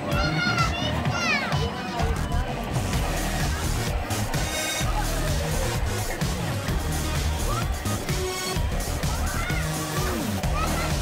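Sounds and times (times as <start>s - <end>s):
background music: 0.0s - 11.0s
child calling out: 9.1s - 11.0s.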